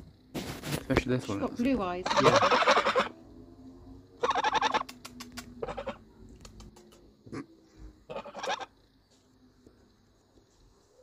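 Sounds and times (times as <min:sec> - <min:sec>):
goose honking: 0:02.0 - 0:03.1, 0:04.2 - 0:04.9, 0:05.6 - 0:06.0, 0:08.1 - 0:08.7
sharp clicks: 0:04.8 - 0:05.6.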